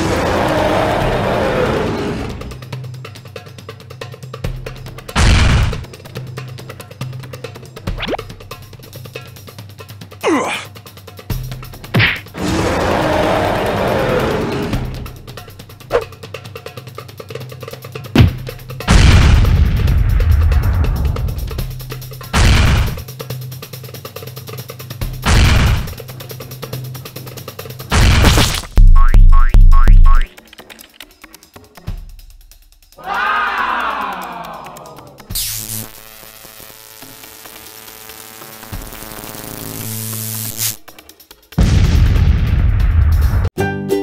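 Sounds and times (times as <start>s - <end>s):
rough crash effect: 22.4s - 23.0s, 25.3s - 26.0s
sharp whack effect: 22.4s - 23.0s, 25.3s - 26.0s, 27.9s - 30.3s
cartoon boing sound effects: 28.8s - 30.3s.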